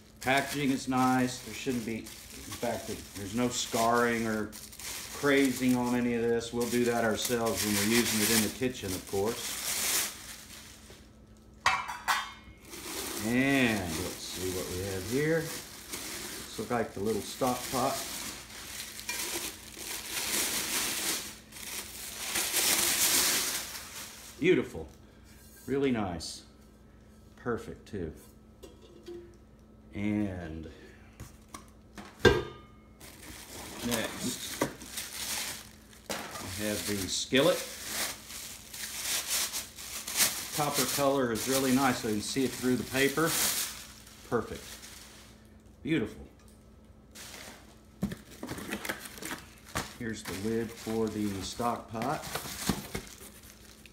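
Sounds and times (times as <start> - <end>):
wrapping crinkling and rustling: 0.0 - 11.6, 12.6 - 25.0, 33.0 - 46.1, 47.1 - 53.9
cookware clattering in box: 11.7 - 12.4.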